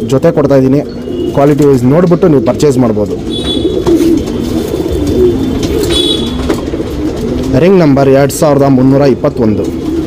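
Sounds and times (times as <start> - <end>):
pigeons cooing: 0.8 - 10.0.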